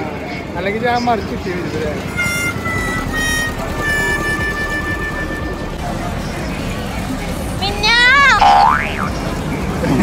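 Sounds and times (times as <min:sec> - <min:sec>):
sliding boing sound effect: 0:08.4 - 0:09.1.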